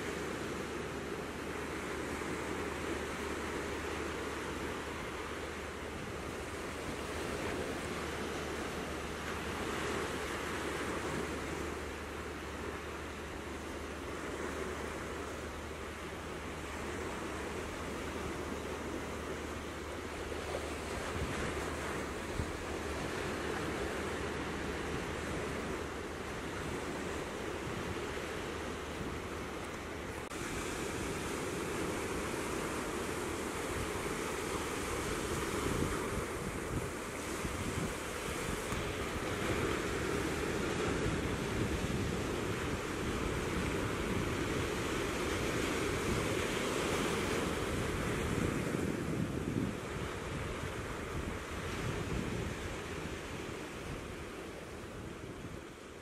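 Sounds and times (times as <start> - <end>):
ocean surf over rocks: 0.0 - 56.0
wind rumbling on microphone: 0.0 - 56.0.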